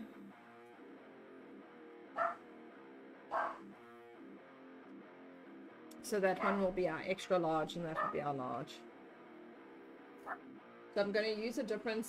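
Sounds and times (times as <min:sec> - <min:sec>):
guitar music: 0:00.0 - 0:12.0
dog barking: 0:02.2 - 0:02.4, 0:03.3 - 0:03.7, 0:06.4 - 0:06.6, 0:08.0 - 0:08.2.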